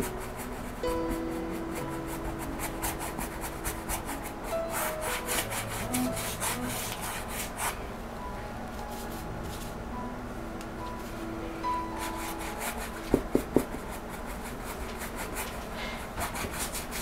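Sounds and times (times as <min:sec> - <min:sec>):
brush scrubbing paint on canvas: 0:01.8 - 0:07.8.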